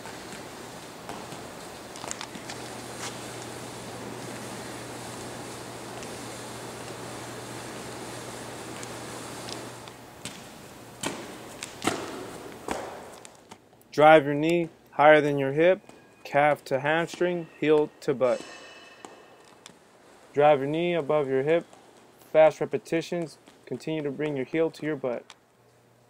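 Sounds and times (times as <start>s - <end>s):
low room hum: 0.0s - 26.0s
feet landing on floor: 10.2s - 13.2s.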